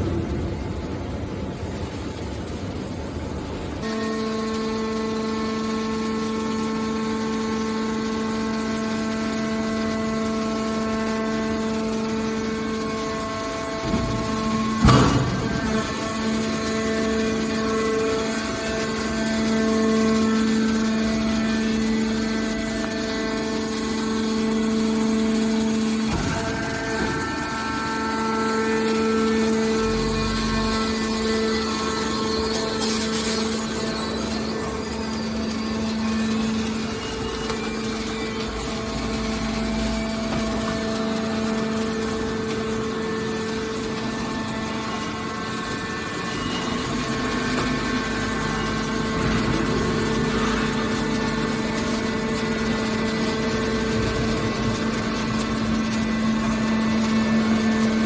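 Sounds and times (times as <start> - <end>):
hydraulic power unit humming: 0.0 - 58.0.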